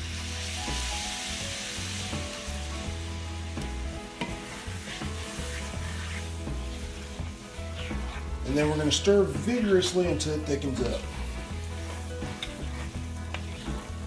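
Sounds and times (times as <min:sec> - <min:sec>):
stock sizzling in skillet: 0:00.0 - 0:14.0
spoon stirring in pan: 0:03.5 - 0:14.0.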